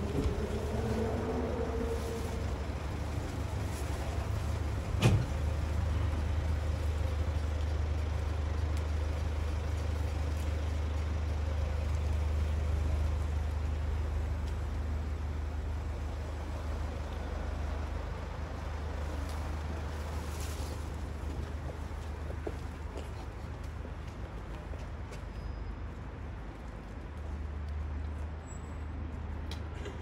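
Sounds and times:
engine idling: 0.0 - 20.2.

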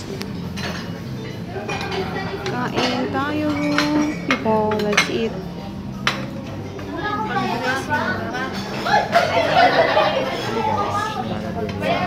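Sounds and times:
plates and cutlery clinking: 0.0 - 12.0.

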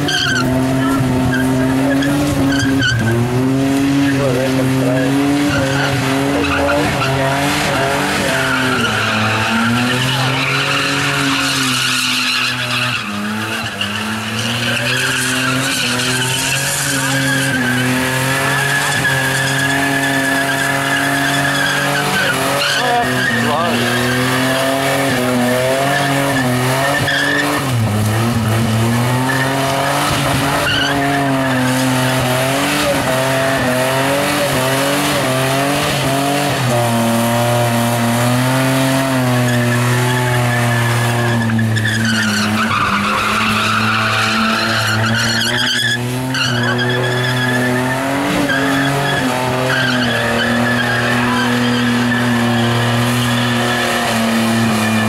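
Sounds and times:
car engine at high revs: 0.0 - 55.0
tyres spinning and squealing: 0.0 - 55.0.

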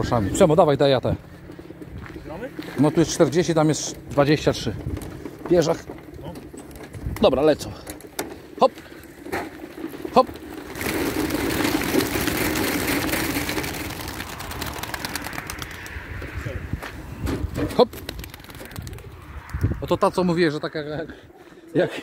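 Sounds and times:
pigeons flapping wings: 8.9 - 16.3, 17.4 - 19.8.

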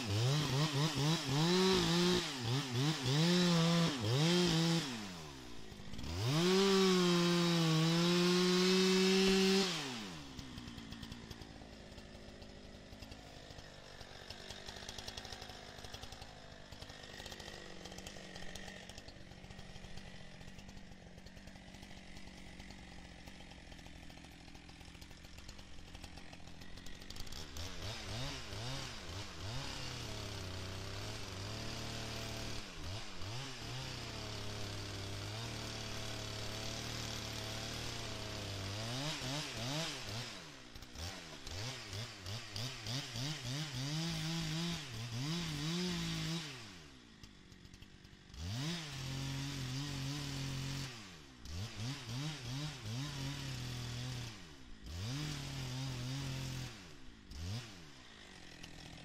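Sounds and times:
chainsaw cutting wood: 0.0 - 59.0.

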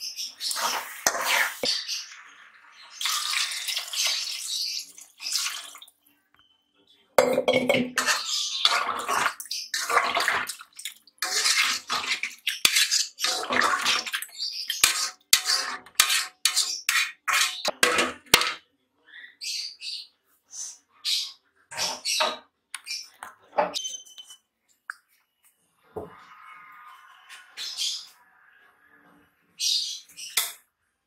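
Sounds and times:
ladle stirring gravy in pot: 0.4 - 2.3, 7.8 - 18.4.

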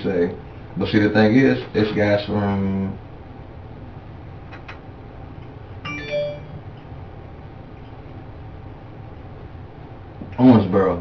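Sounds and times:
phone chime tone: 5.9 - 6.6.

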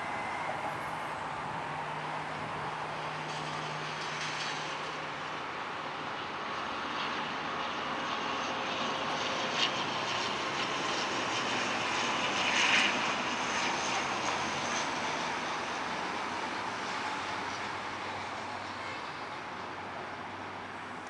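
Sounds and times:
turboprop engines and propellers: 0.0 - 21.0.

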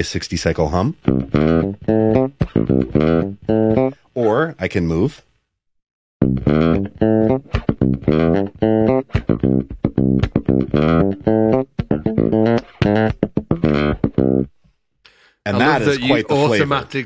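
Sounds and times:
funky bass guitar line: 1.0 - 4.0, 6.2 - 14.5.

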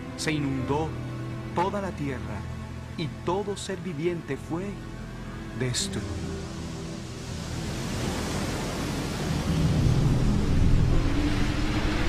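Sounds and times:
background music: 0.0 - 12.0
loud rushing water with rumble: 4.7 - 12.0.

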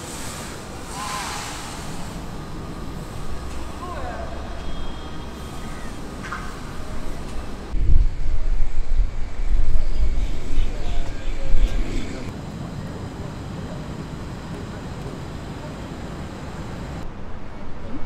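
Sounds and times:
outdoor hiss: 0.0 - 7.7
wind rumbling on microphone: 6.5 - 13.4
faint distant voices: 10.6 - 17.0.

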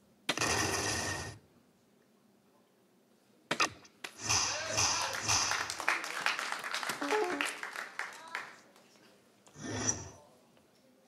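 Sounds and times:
dartboard hit sound effect: 3.5 - 5.7.

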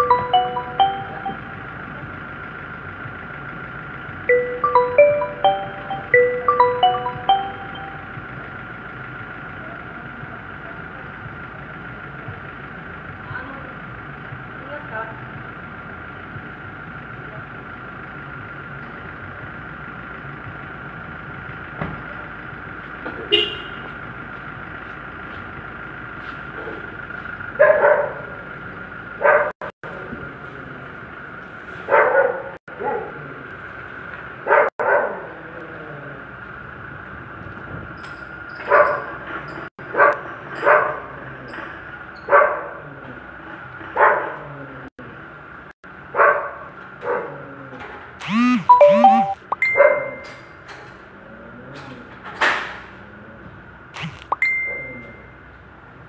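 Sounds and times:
dog barking: 27.6 - 28.3, 29.2 - 29.5, 31.9 - 33.2, 34.4 - 35.2, 38.7 - 39.1, 39.9 - 41.0, 42.3 - 42.8, 44.0 - 44.4, 46.2 - 47.3.

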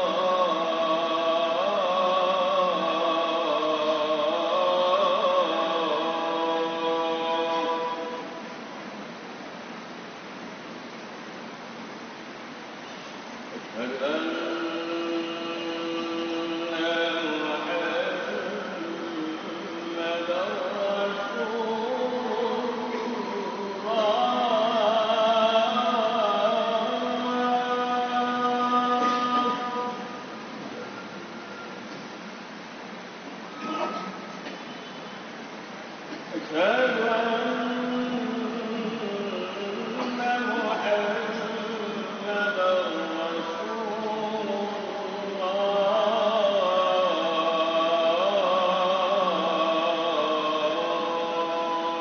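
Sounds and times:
man chanting call to prayer: 0.0 - 8.5, 13.7 - 31.0, 36.3 - 52.0.

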